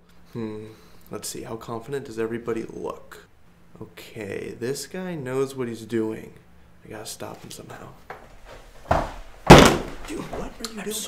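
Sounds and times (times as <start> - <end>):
heavy thuds against a table: 8.8 - 10.5.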